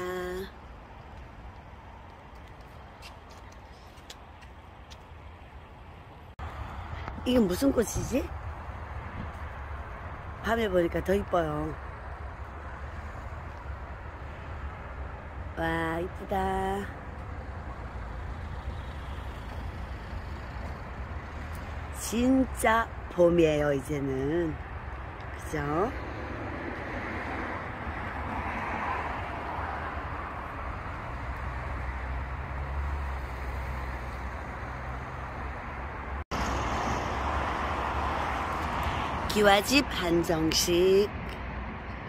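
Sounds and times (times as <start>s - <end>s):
distant road traffic: 0.0s - 42.0s.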